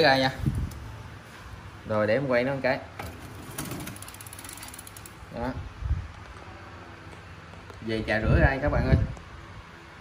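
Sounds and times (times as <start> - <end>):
bicycle freewheel clicking: 3.4 - 5.4.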